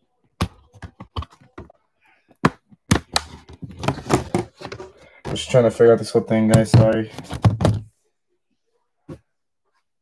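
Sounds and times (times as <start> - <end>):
laptop being handled: 2.4 - 5.6, 6.5 - 7.9.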